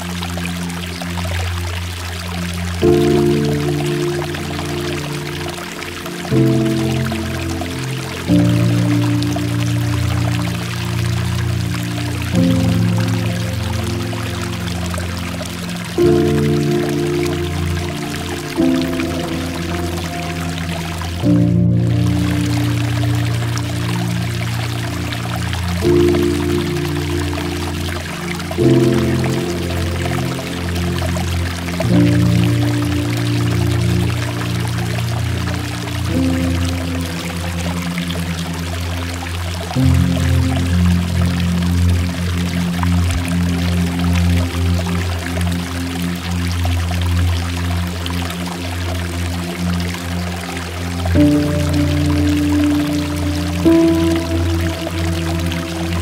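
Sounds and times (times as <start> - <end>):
slow ambient music: 0.0 - 56.0
water trickling and dripping: 0.0 - 56.0.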